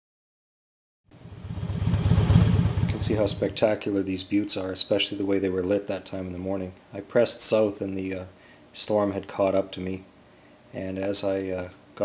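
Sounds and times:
motorcycle engine running: 0:01.2 - 0:03.6
wind rush: 0:01.2 - 0:03.6.

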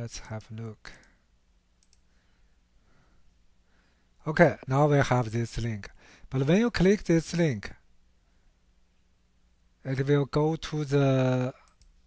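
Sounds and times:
computer mouse clicks: 0:01.8 - 0:02.1, 0:11.6 - 0:12.0.

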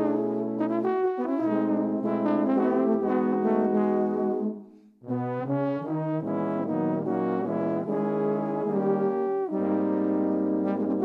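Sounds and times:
trombones playing chords: 0:00.0 - 0:11.0.

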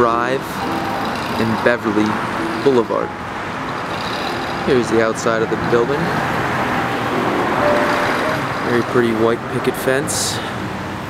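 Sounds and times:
road traffic of passing cars: 0:00.0 - 0:11.0.

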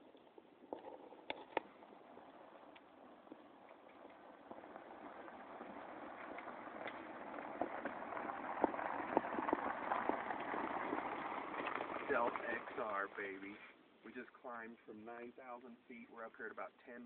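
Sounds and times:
stones clicking and popping: 0:00.0 - 0:12.8
tyres crunching over rocks: 0:00.0 - 0:13.5.

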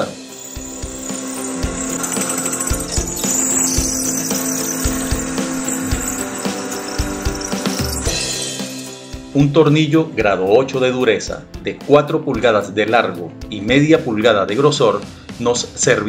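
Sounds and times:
drill press cutting steel: 0:00.0 - 0:09.0
background music: 0:00.0 - 0:16.0.

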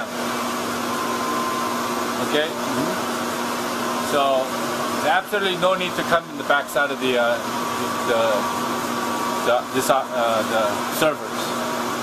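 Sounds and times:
server fans rushing air: 0:00.0 - 0:12.0.

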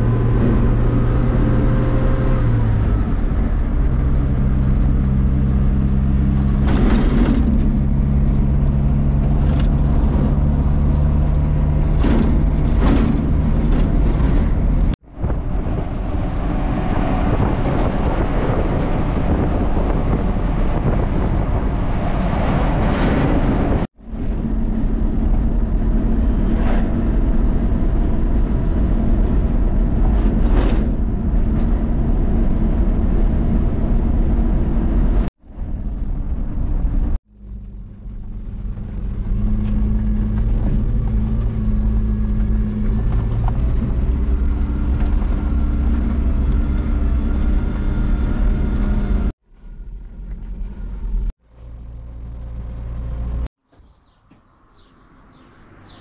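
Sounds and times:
road and tyre rumble: 0:00.0 - 0:56.0
truck engine drone: 0:00.0 - 0:56.0.

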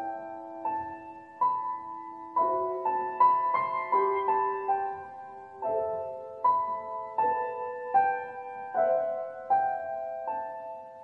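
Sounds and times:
slow grand piano piece: 0:00.0 - 0:11.0.

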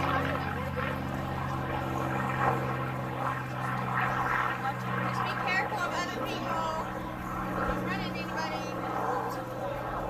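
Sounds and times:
people talking: 0:00.0 - 0:10.0
steady low drone: 0:00.0 - 0:10.0.

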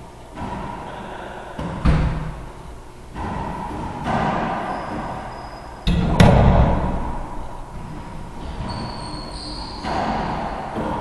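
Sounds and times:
booming echo: 0:00.4 - 0:08.8
racquet striking ball: 0:03.1 - 0:08.7, 0:09.6 - 0:11.0
ball hitting wall: 0:05.9 - 0:07.2.

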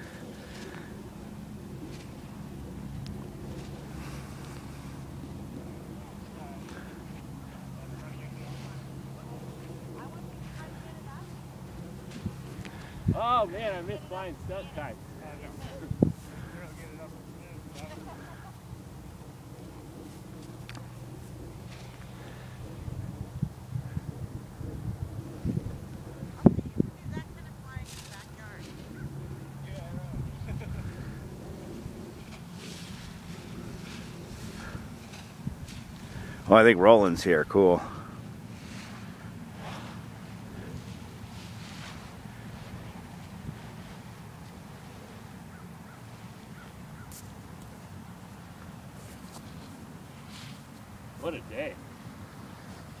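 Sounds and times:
wind buffeting microphone: 0:00.0 - 0:36.8.

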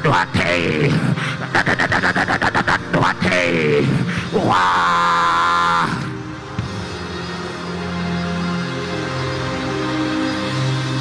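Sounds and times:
man crying out into microphone: 0:00.0 - 0:06.2
soft background music: 0:00.0 - 0:11.0.

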